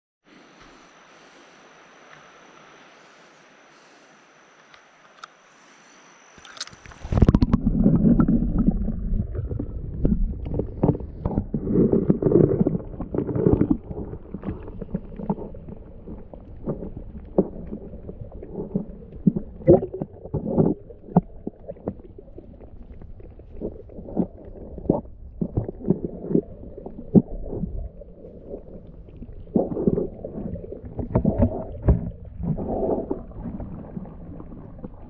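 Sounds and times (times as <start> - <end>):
underwater low rumble of water: 0.3 - 35.0
dull knocks underwater: 7.0 - 15.6, 28.6 - 35.0.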